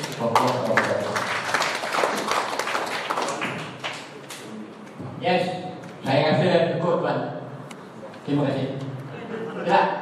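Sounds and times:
audience applause: 0.0 - 4.1.

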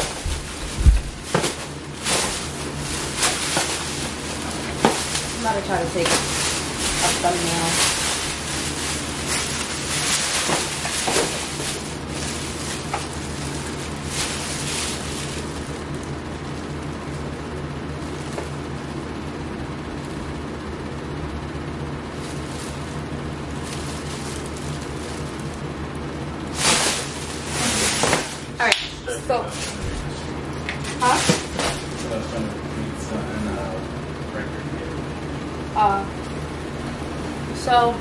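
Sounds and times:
plastic bags crinkling: 0.0 - 17.3, 22.0 - 25.7, 26.4 - 32.2
steady low hum: 0.0 - 38.0.

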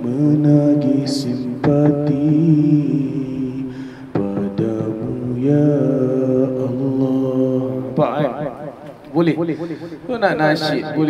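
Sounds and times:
man singing into microphone: 0.0 - 8.4.

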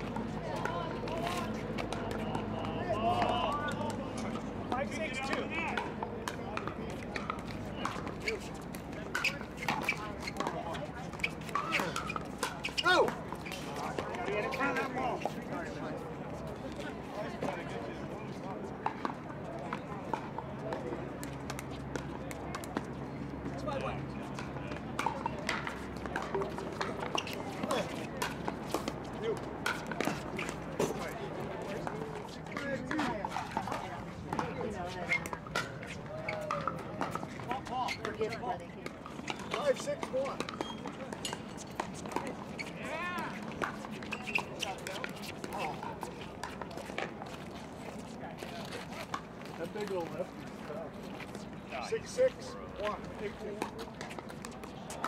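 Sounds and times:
voices talking: 0.1 - 21.0, 22.2 - 55.0.

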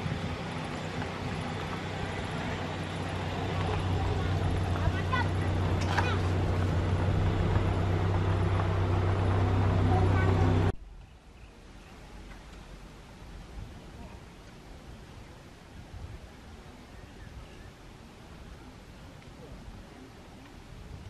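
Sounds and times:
low engine hum: 0.0 - 11.1.

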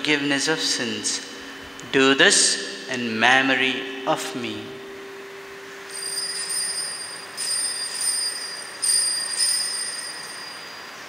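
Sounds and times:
altar bells ringing: 2.9 - 11.0.

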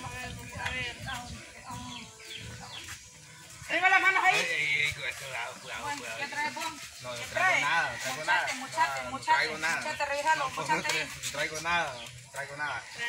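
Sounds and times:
people talking and calling out: 0.0 - 13.0.

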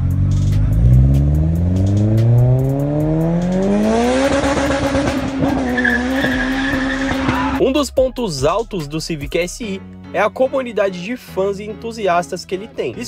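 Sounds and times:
car engine accelerating hard: 0.0 - 7.6
high-pitched squeal: 5.4 - 7.6.

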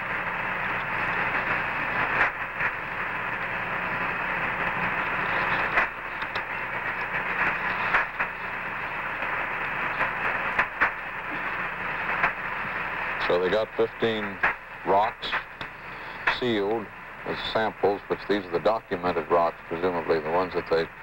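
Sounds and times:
radio static hiss: 0.0 - 21.0
sharp radio clicks: 4.7 - 6.5, 14.0 - 16.5.

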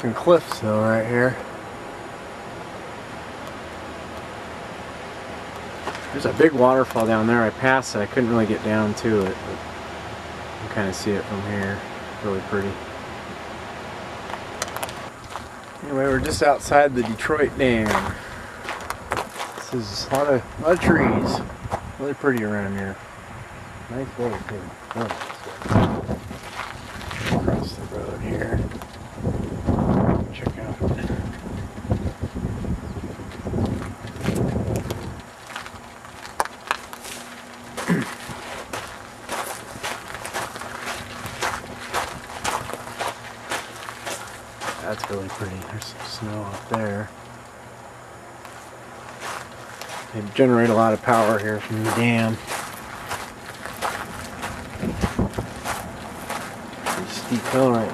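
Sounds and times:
man's voice: 0.0 - 1.4, 6.1 - 9.6, 15.8 - 18.4, 19.6 - 23.0, 23.9 - 25.9, 27.3 - 28.6, 44.8 - 47.1, 50.2 - 52.6, 56.8 - 57.9
car road noise: 0.0 - 57.9
faint steady hum: 0.0 - 57.9
light footsteps: 5.5 - 7.3, 14.2 - 21.9, 24.2 - 29.1, 33.3 - 47.4, 48.4 - 57.9
wind gusts on microphone: 15.9 - 22.0, 25.5 - 35.3, 53.8 - 56.1.

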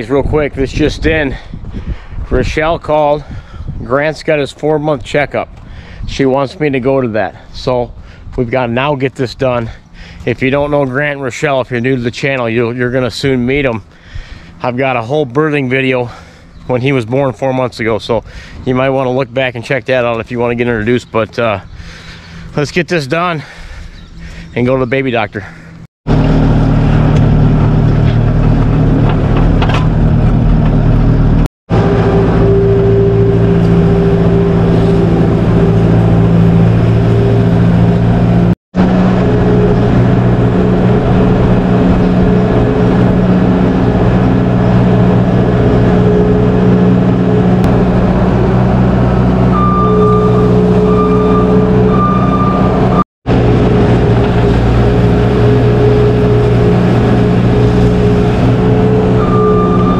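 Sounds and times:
diesel engine running: 9.6 - 15.1, 15.8 - 16.7, 21.7 - 22.6, 23.4 - 24.6, 25.4 - 59.9
short beep: 49.5 - 53.0, 59.1 - 59.9.

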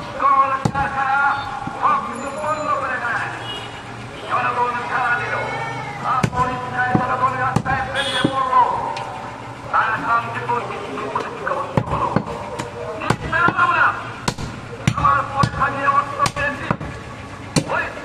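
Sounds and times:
voices talking: 0.0 - 18.0.

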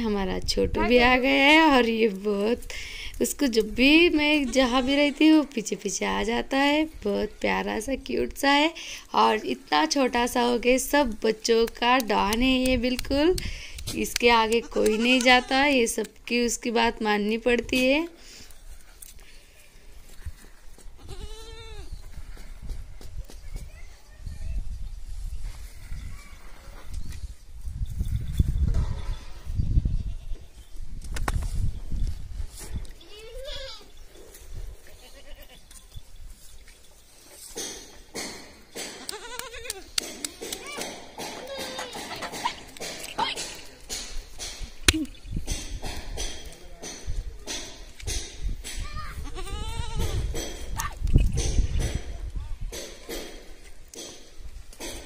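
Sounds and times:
goat bleating: 14.5 - 15.9, 21.0 - 21.9, 34.9 - 35.6, 39.0 - 39.9, 49.2 - 50.2.

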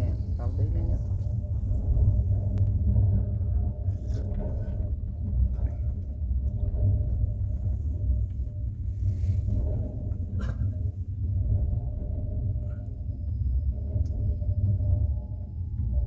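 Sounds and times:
train rumble from inside carriage: 0.0 - 16.0.

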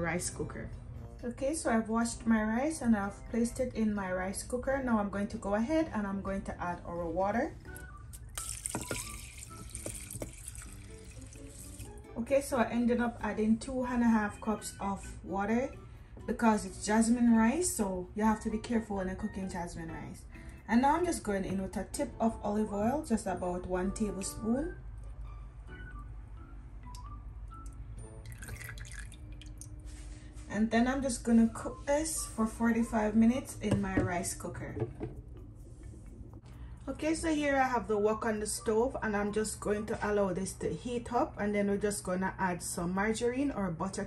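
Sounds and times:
drips and small splashes: 7.8 - 12.0, 28.2 - 29.7
water pouring into a pot: 8.1 - 12.0, 28.2 - 29.7.

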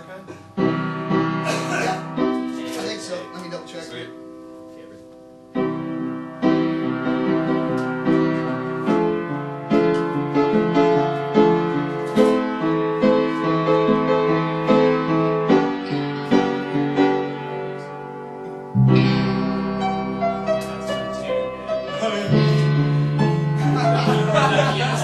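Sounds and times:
piano chords and notes: 0.0 - 25.0.

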